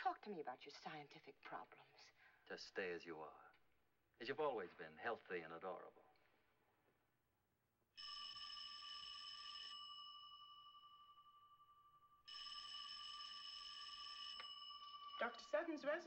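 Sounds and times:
telephone bell ringing: 0:08.0 - 0:16.0.

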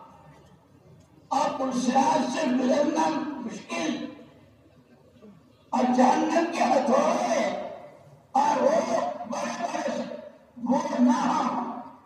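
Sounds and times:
man giving a sermon: 0:01.3 - 0:04.4, 0:05.7 - 0:12.0.

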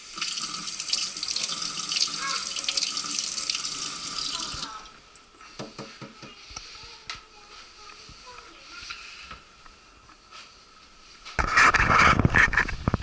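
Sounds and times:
faucet running into sink: 0:00.0 - 0:04.9.

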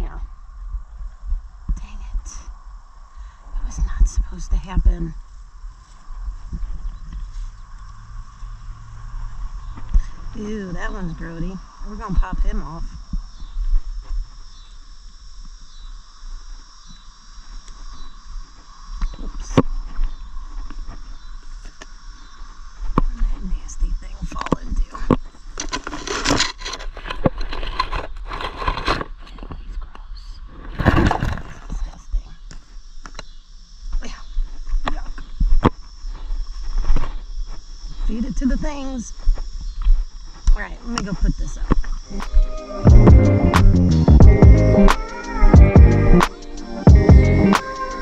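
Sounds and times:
insect chorus droning: 0:00.0 - 0:48.0
foliage rustling: 0:04.4 - 0:14.5.

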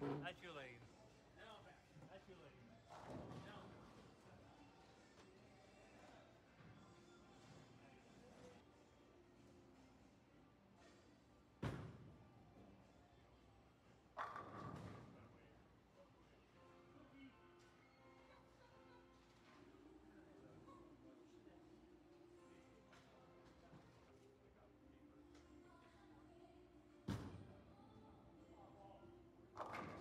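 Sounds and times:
faint indistinct voices: 0:00.0 - 0:30.0.

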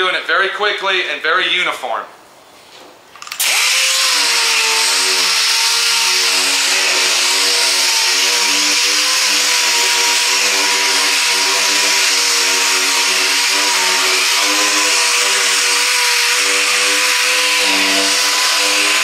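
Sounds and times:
air-powered palm sander whining: 0:03.4 - 0:19.0.

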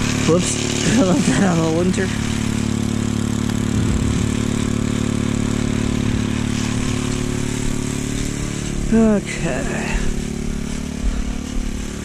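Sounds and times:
small engine running steadily: 0:00.0 - 0:12.0.

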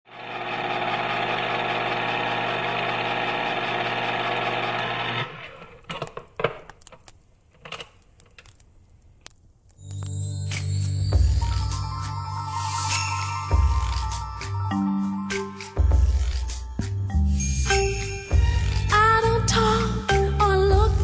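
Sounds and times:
film projector whirring: 0:00.1 - 0:05.6
clicks and crackles: 0:05.5 - 0:10.2.

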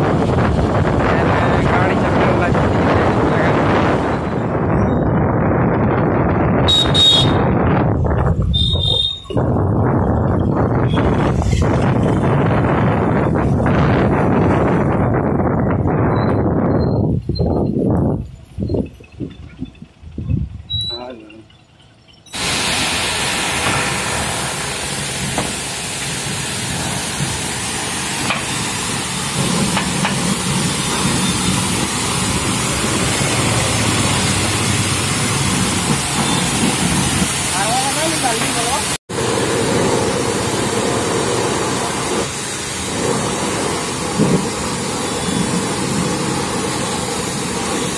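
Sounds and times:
wind buffeting microphone: 0:00.0 - 0:21.5
vehicle road noise: 0:00.0 - 0:47.9
pressure washer jet hissing: 0:22.3 - 0:47.9.

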